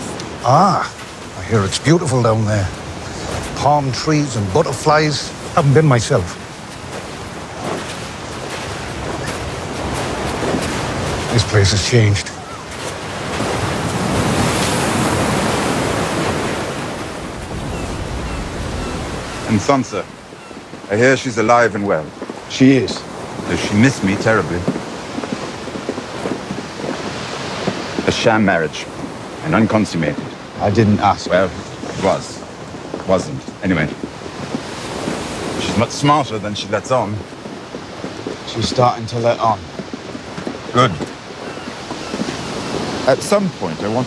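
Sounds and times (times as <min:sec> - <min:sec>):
sea surf washing onto shore: 0:00.0 - 0:44.0
wind: 0:00.0 - 0:44.0.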